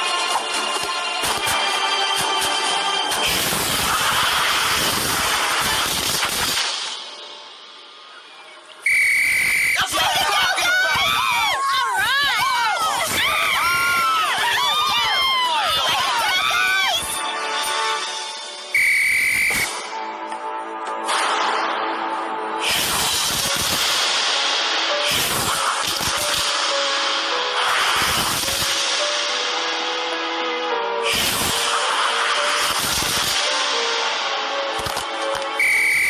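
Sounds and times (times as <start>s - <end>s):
loud rush of noise: 3.0s - 7.2s
sports whistle blast: 8.8s - 9.9s, 18.7s - 19.8s, 35.6s - 36.0s
cartoon characters yelling and screaming: 9.8s - 17.1s.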